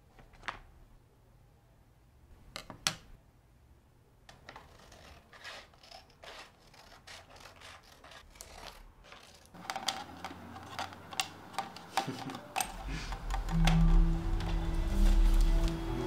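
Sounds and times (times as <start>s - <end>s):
scissors snipping paper: 4.4s - 13.6s.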